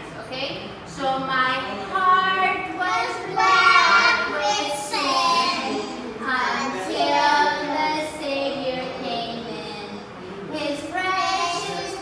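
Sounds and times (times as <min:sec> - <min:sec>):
young children singing: 0:01.7 - 0:12.0.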